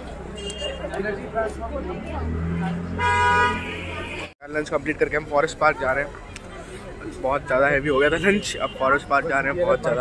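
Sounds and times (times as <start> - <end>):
vehicle horn: 0.4 - 1.0, 2.6 - 4.3.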